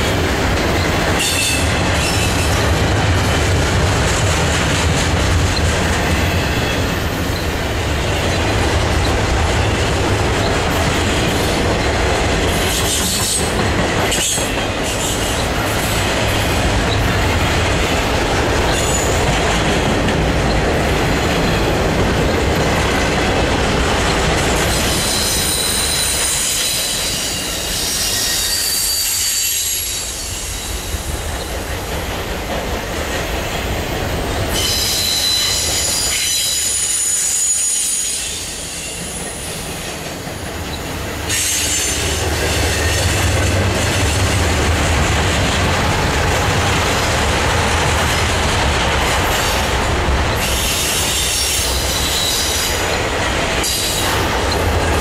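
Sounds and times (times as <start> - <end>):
train wheels rumbling on rail: 0.0 - 55.0
high-pitched wheel squeal: 24.8 - 30.7, 34.5 - 39.2.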